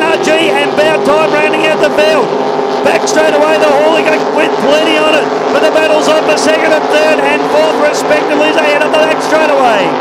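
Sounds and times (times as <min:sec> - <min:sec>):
race boat engines droning: 0:00.0 - 0:10.0
race commentator talking: 0:00.0 - 0:10.0.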